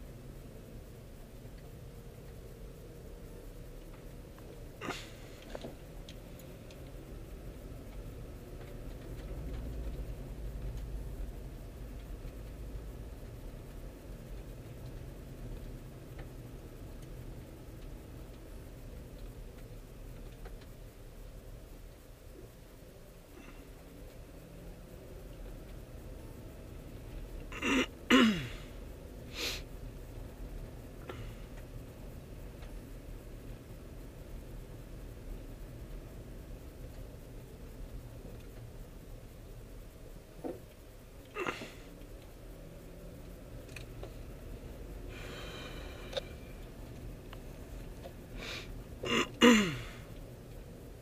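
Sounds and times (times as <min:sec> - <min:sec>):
car road rumble inside cabin: 0:00.0 - 0:51.0
asphalt ticking in wheel wells: 0:00.3 - 0:28.1, 0:28.7 - 0:51.0
person sneezing: 0:04.8 - 0:05.3, 0:27.6 - 0:28.7, 0:41.4 - 0:41.8, 0:48.5 - 0:50.0
short breath: 0:45.1 - 0:46.3.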